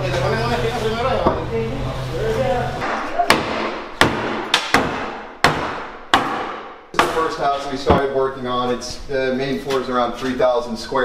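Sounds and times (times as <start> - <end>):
hammer striking cabinetry: 2.8 - 8.2.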